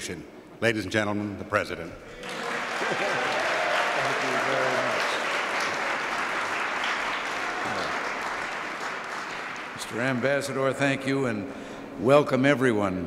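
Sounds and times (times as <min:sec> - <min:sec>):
laughter: 0:02.2 - 0:03.6
audience applauding: 0:02.2 - 0:10.7.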